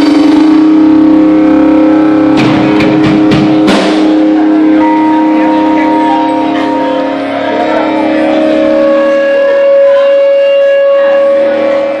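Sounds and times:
rock band holding a chord: 0.0s - 12.0s.

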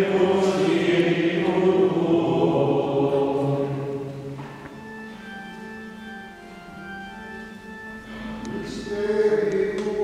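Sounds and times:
church organ playing quietly: 0.0s - 10.0s.

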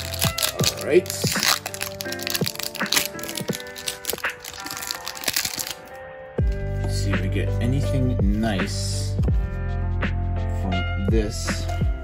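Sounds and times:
foil wrapper tearing and crinkling: 0.0s - 6.0s
background music with held tones: 0.0s - 12.0s.

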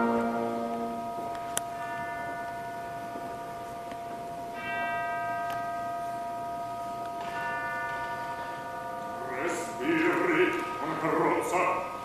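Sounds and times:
orchestra holding a tone: 0.0s - 1.3s
tubular bells tolling: 0.0s - 12.0s.

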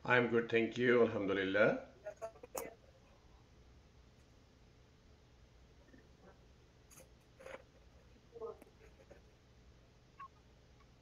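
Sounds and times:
small handling noises: 5.8s - 9.5s.

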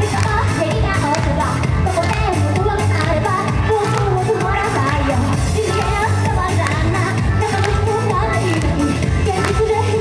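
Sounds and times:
dance beat backing track: 0.0s - 10.0s
woman singing pop song: 0.0s - 10.0s.

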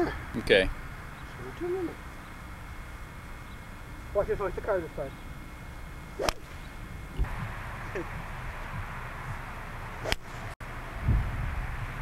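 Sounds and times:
golf club swish: 6.2s - 6.6s, 10.0s - 10.6s
club striking ball crack: 6.2s - 7.3s, 10.0s - 10.5s.

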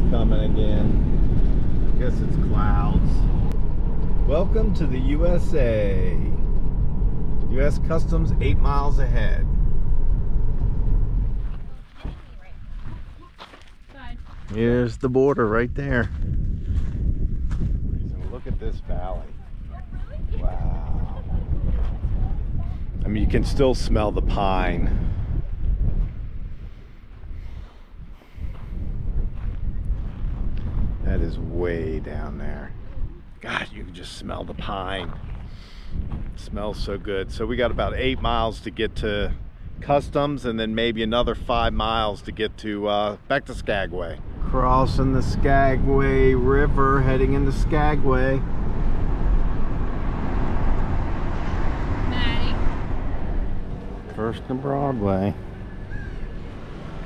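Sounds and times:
van road noise from inside: 0.0s - 12.9s, 44.0s - 57.0s
wind buffeting microphone: 0.0s - 57.0s.

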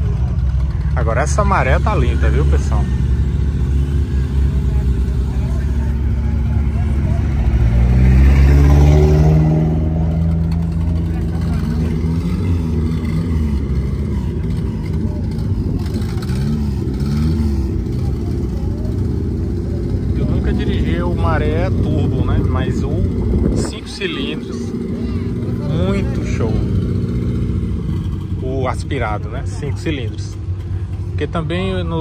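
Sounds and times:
car engine revving: 0.0s - 32.0s.

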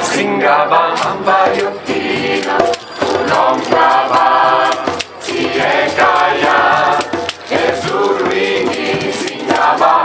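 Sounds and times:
gospel choir singing: 0.0s - 10.0s
hand drum beating: 1.0s - 9.8s.

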